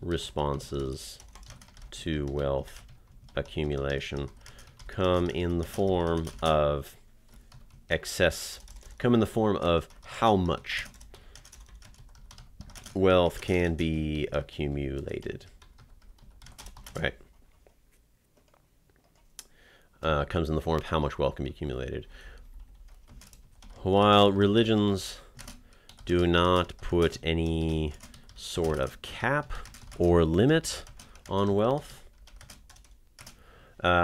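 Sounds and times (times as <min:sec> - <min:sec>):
typing on computer keyboard: 0:00.5 - 0:06.6, 0:07.3 - 0:07.9, 0:08.5 - 0:09.2, 0:09.8 - 0:13.6, 0:15.0 - 0:17.1, 0:22.3 - 0:23.8, 0:25.2 - 0:33.4.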